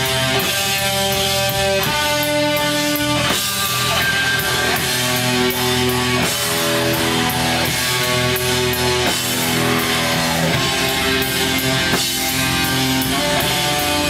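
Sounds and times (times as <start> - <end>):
cymbals and drums: 0.0 - 14.0
distorted electric guitars: 0.0 - 14.0.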